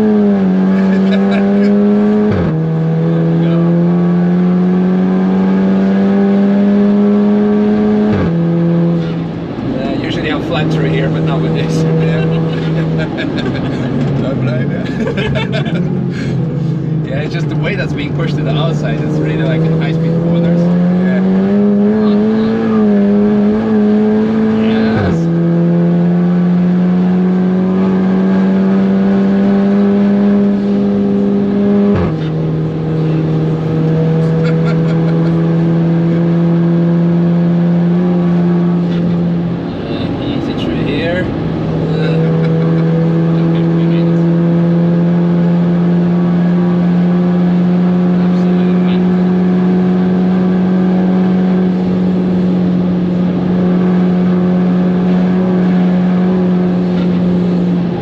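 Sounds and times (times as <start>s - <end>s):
car engine accelerating: 0.0s - 58.0s.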